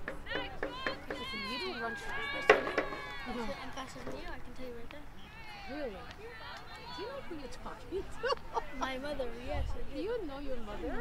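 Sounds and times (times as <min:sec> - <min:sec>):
players shouting and calling: 0:00.0 - 0:11.0.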